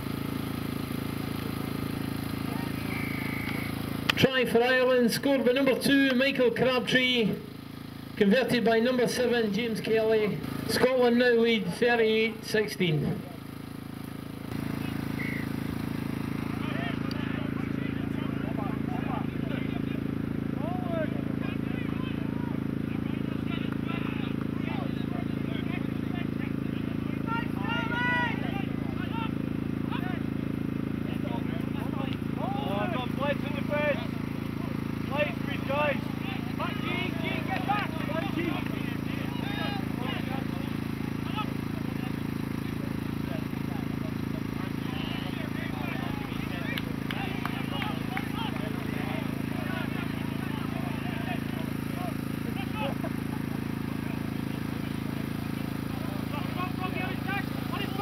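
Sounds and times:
players shouting: 14.6 - 58.0.

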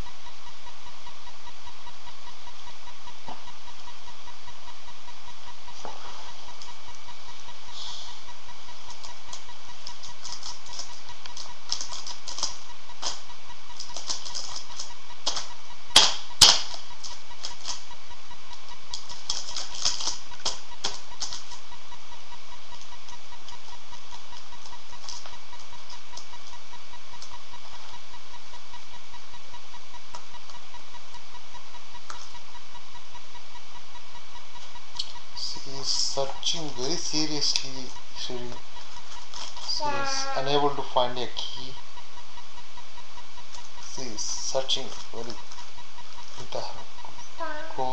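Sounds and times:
steady electrical hum: 0.0 - 47.9.

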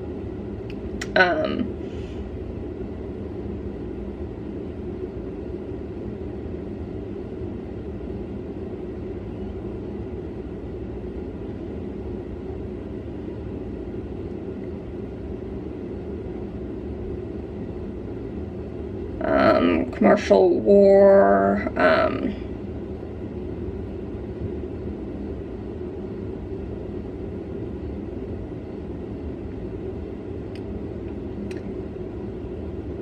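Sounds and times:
air conditioner humming: 0.0 - 33.0.

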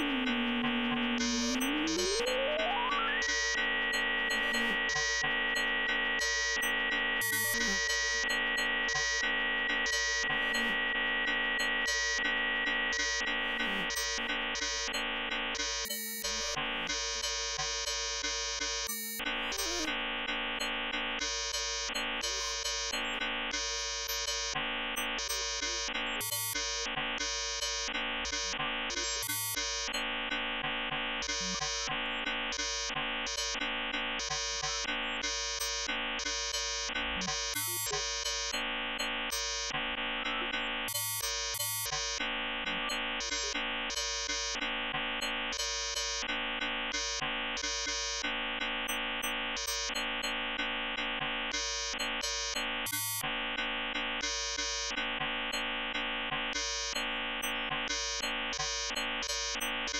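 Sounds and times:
buzzy pulsing synthesizer chord: 0.0 - 6.2.

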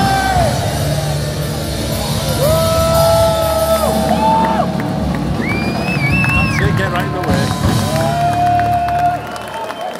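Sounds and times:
punk rock band playing live: 0.0 - 8.8.

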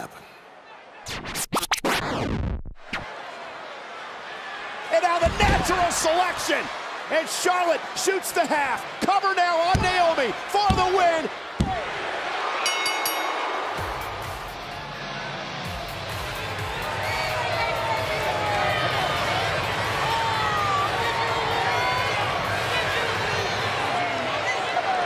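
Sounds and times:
crowd cheering and shouting: 0.0 - 1.2, 2.8 - 25.0
ring bell: 12.6 - 14.3
music over arena speakers: 13.0 - 25.0.

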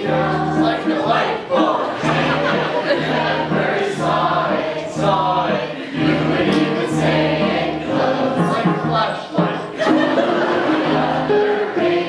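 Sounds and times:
choir singing: 0.0 - 12.0.

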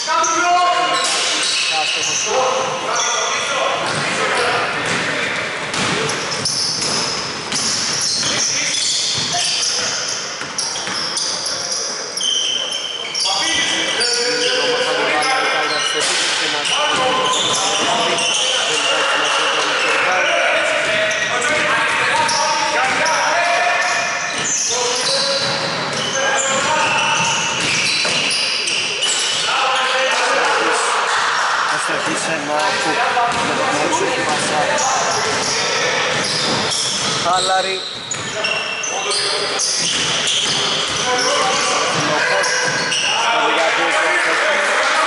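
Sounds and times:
voices in echoing hall: 0.0 - 45.0
basketball bouncing on hardwood: 4.8 - 5.0.

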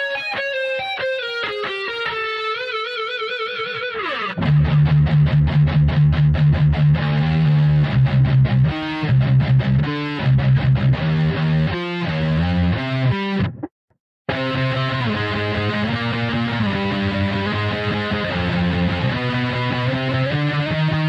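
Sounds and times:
distorted electric guitar riff: 0.0 - 13.7, 14.3 - 21.0.

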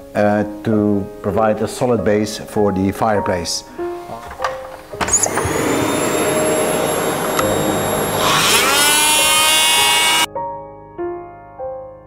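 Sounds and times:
multi-tool cutting wood: 5.0 - 10.3.

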